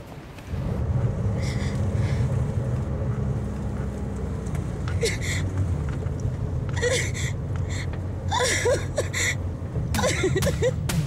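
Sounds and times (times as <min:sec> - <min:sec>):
car engine and road rumble: 0:00.0 - 0:11.0
breathy sobs: 0:06.8 - 0:09.4.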